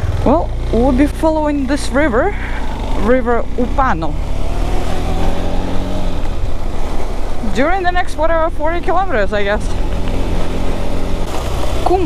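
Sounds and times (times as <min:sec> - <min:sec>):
low wind rumble: 0:00.0 - 0:12.0
motorcycle engine running: 0:00.0 - 0:12.0
road noise on gravel: 0:00.0 - 0:12.0.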